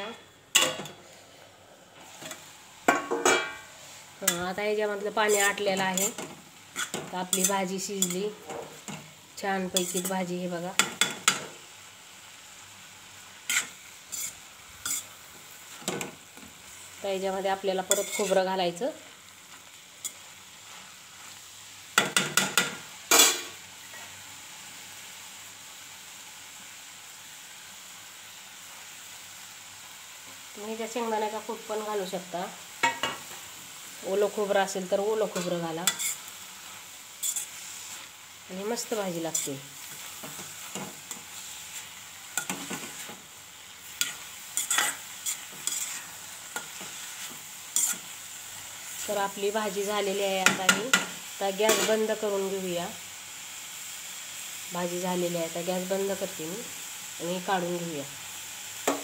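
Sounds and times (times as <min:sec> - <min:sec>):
metal spatula striking pan: 0:00.0 - 0:01.0, 0:02.9 - 0:03.7
vegetables sizzling in a pan: 0:00.0 - 0:59.0
metal spatula scraping a pan: 0:02.1 - 0:11.5, 0:13.5 - 0:15.2, 0:17.8 - 0:18.4, 0:35.2 - 0:36.3, 0:37.2 - 0:38.1, 0:39.1 - 0:43.2, 0:43.8 - 0:48.2, 0:50.4 - 0:52.2.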